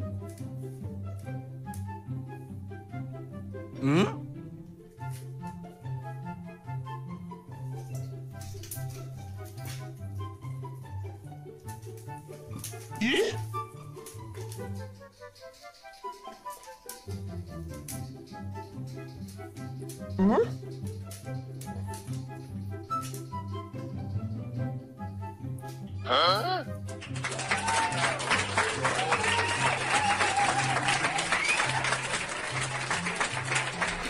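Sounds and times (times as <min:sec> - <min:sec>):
background music with bouncy bass: 0:17.2 - 0:26.7.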